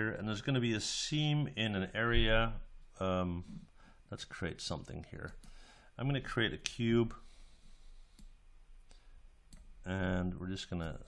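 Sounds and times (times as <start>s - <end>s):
low room hiss: 0.0s - 11.0s
computer mouse clicks: 8.1s - 9.7s.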